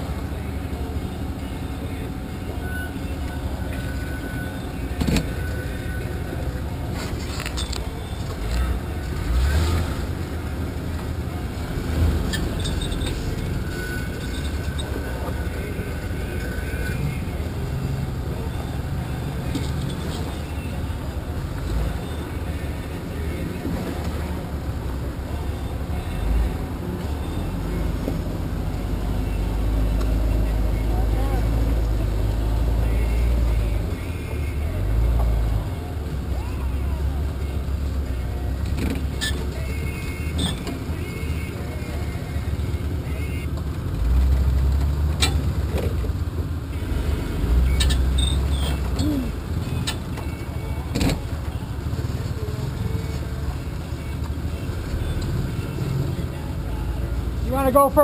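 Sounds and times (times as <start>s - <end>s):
engine rumble: 0.0s - 58.0s.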